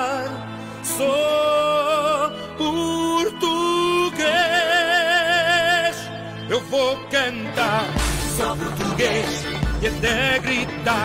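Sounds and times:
instrumental backing: 2.6s - 11.0s.

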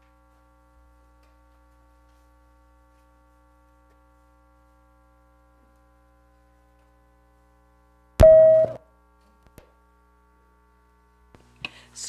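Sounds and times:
steady electronic tone: 8.2s - 8.8s.

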